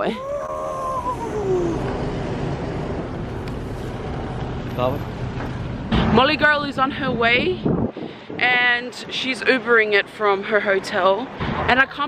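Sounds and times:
voice in falling tone: 0.0s - 2.1s
distant traffic rumble and hiss: 0.0s - 12.0s.

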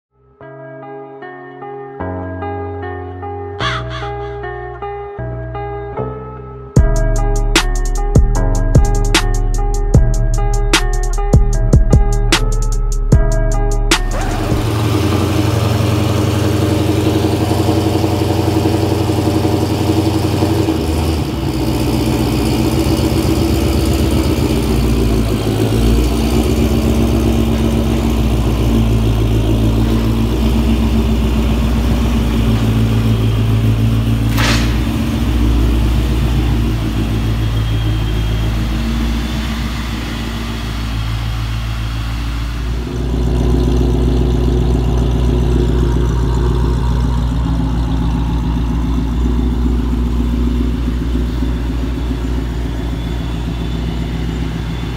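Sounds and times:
car engine idling: 6.8s - 54.9s.

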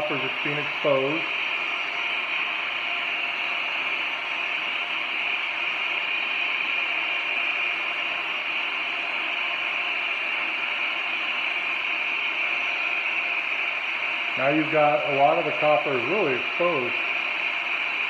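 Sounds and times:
gas torch hissing: 0.0s - 18.0s.

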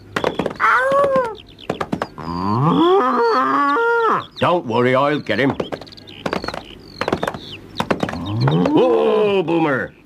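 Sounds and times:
sharp knocks: 0.0s - 2.2s, 5.3s - 8.8s
bull bellowing: 2.2s - 4.3s.

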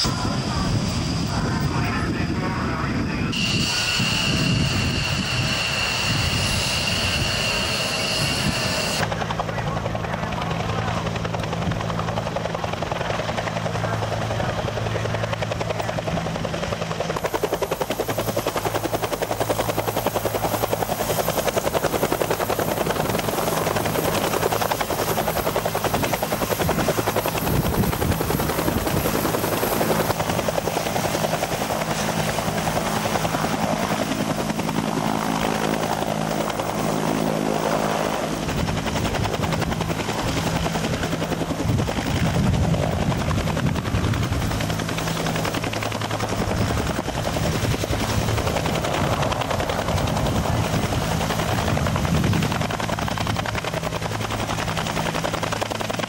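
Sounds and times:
helicopter engine and rotor drone: 0.0s - 56.0s
high turbine whine: 0.0s - 56.0s.

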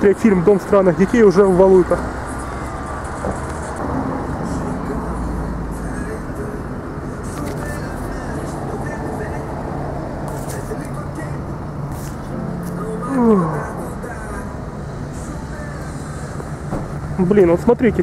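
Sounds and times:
faint voices: 0.0s - 18.0s
vehicle engine hum: 0.0s - 18.0s.

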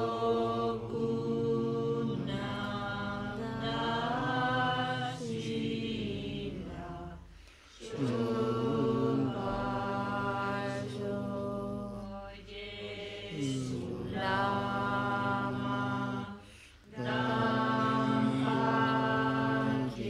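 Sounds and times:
voices chanting prayer: 0.0s - 20.0s.

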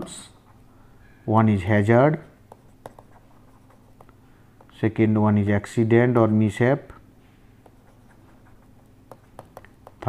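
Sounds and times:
stylus tapping and scratching screen: 2.2s - 4.8s, 7.6s - 10.0s.

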